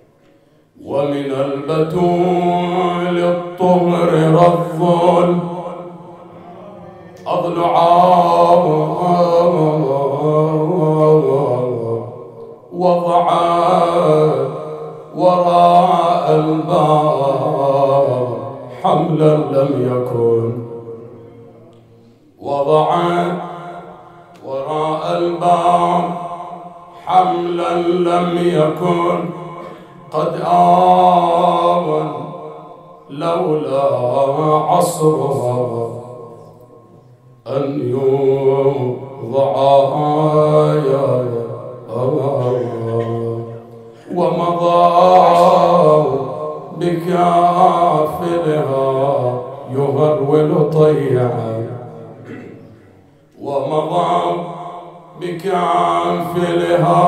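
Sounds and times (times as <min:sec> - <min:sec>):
man chanting into microphone: 0:00.8 - 0:57.0.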